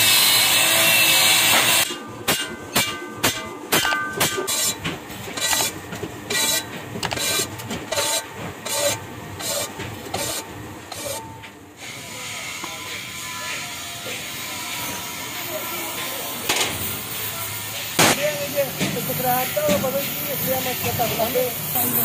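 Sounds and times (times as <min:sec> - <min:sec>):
angle grinder on steel: 0:00.0 - 0:04.8, 0:05.4 - 0:11.2
gas cutting torch hissing: 0:14.9 - 0:22.0.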